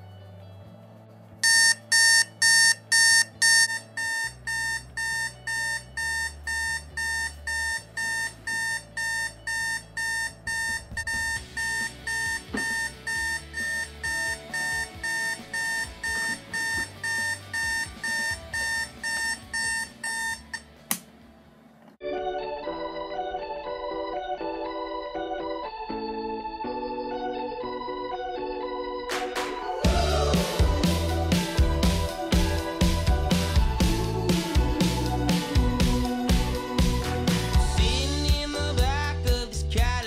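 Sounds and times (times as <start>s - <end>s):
alarm clock beeping: 1.4s - 20.7s.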